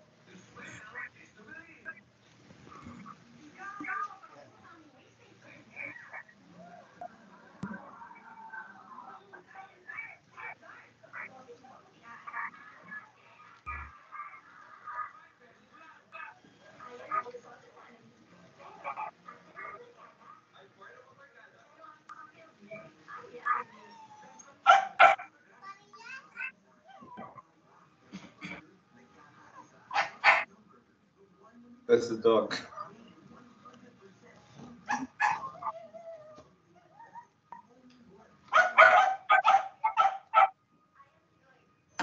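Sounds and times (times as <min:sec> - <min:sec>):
faint murmuring voices: 0:00.0 - 0:42.0
dog barking: 0:18.6 - 0:20.4, 0:24.6 - 0:25.3, 0:29.9 - 0:30.5, 0:34.9 - 0:35.8, 0:38.5 - 0:40.6.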